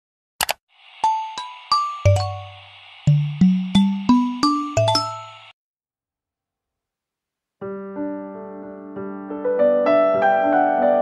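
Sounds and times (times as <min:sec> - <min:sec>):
chime jingle: 0:01.0 - 0:02.6, 0:03.3 - 0:05.5.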